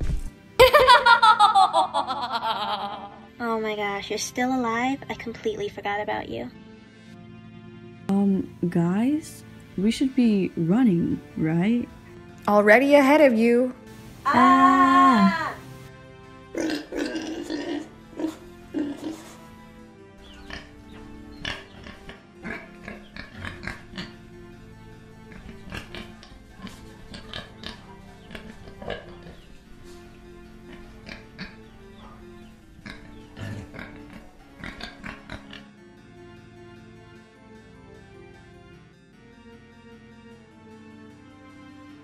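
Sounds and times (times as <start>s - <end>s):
background music: 0.0s - 42.0s
pig grunting: 16.5s - 19.5s, 20.3s - 20.8s, 21.4s - 24.2s, 25.2s - 29.6s, 30.6s - 35.7s.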